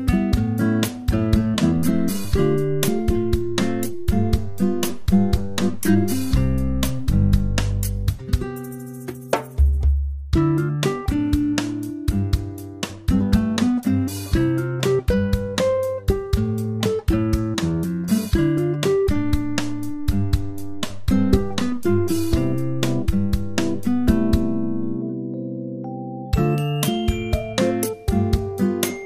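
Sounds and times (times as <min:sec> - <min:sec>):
plucked string notes: 0:00.0 - 0:08.6, 0:10.4 - 0:29.0.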